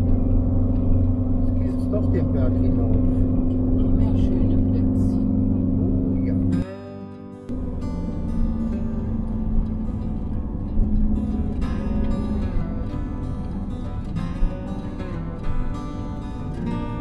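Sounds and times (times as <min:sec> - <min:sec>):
soft acoustic guitar music: 0:00.0 - 0:05.4, 0:06.0 - 0:17.0
engine drone and road noise: 0:00.0 - 0:17.0.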